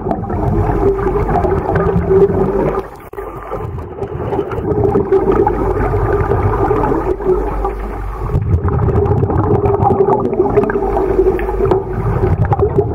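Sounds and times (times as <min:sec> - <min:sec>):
steady hum: 0:00.0 - 0:12.9
underwater rumble and gurgling: 0:00.0 - 0:12.9.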